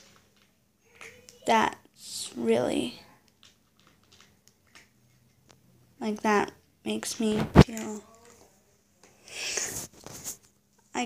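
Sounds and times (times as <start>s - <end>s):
cat eating from plastic bowl: 3.1s - 5.6s.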